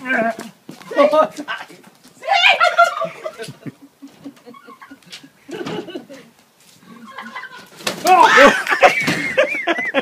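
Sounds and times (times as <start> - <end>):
quiet laughter: 2.6 - 10.0.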